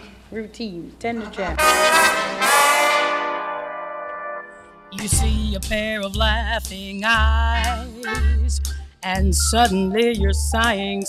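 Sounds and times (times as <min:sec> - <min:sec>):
brass section playing chords: 0:01.4 - 0:05.2, 0:07.4 - 0:08.5.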